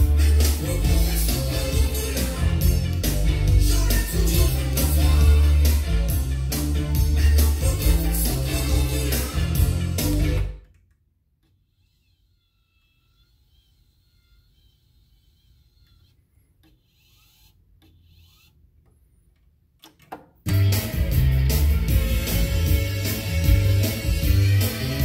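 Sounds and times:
music from vinyl record: 0.0s - 10.6s, 20.5s - 25.0s.

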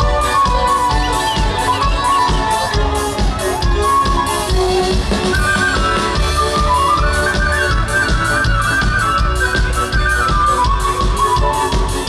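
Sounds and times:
fiddles playing melody: 0.0s - 12.0s.

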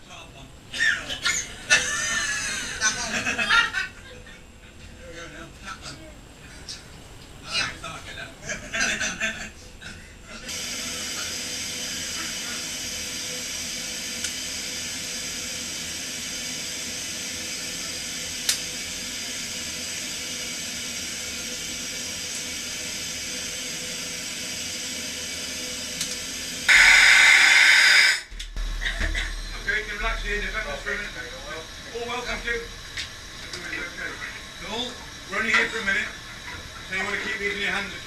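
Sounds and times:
air venting hiss: 0.0s - 38.0s.

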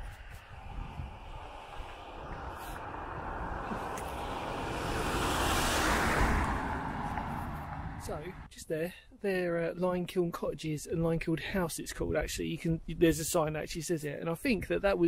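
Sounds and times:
car passing by: 0.0s - 8.5s.

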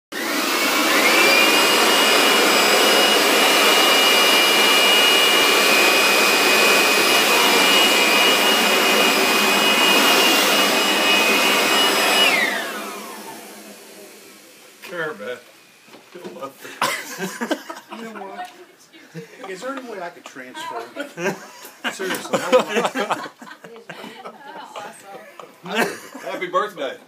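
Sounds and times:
blower motor whine: 0.2s - 14.8s.

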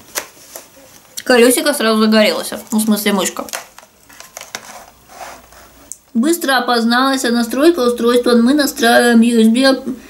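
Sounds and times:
soft rustling: 3.5s - 5.9s.

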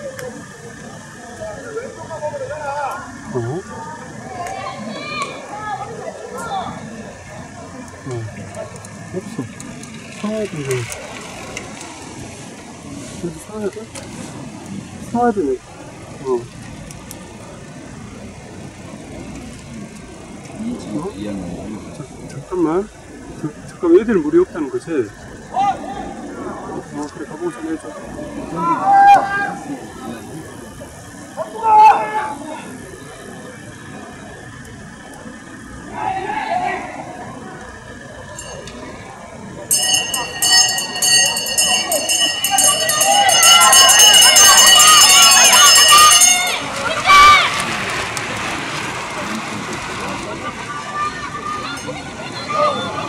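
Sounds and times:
faint indistinct voices: 0.0s - 53.0s
low outdoor rumble: 0.0s - 53.0s
spectators murmuring: 0.0s - 53.0s
hand bell rung rapidly: 38.4s - 38.7s, 39.7s - 46.8s.

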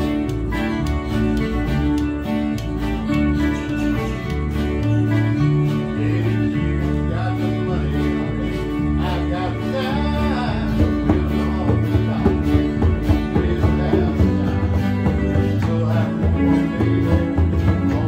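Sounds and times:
acoustic and electric guitars: 0.0s - 18.0s
electric bass line: 0.0s - 18.0s
keyboard: 0.0s - 18.0s.

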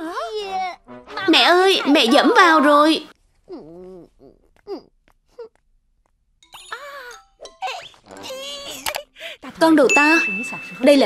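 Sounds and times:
cartoon woman's wavering vocal sounds: 3.5s - 5.6s.

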